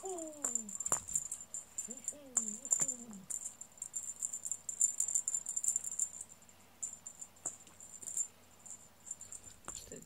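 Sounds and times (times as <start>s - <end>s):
small bell jingling: 0.0s - 10.0s.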